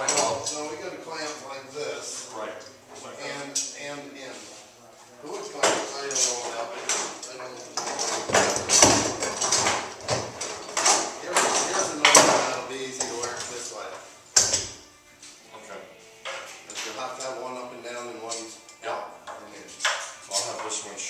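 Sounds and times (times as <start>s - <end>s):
metal clamps and tools clattering: 0.0s - 0.7s, 5.6s - 13.5s
men talking indistinctly: 0.0s - 14.2s, 15.5s - 16.0s, 16.6s - 21.0s.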